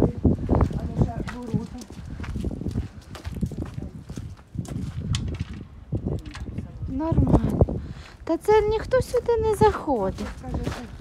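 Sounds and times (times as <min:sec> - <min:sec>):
footsteps on frozen ground: 0:00.0 - 0:11.0.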